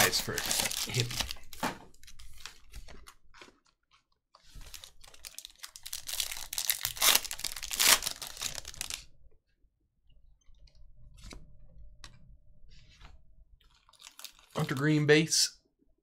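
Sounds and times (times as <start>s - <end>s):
foil wrapper crinkling and tearing: 0.0s - 3.6s, 4.4s - 9.1s, 13.6s - 15.0s.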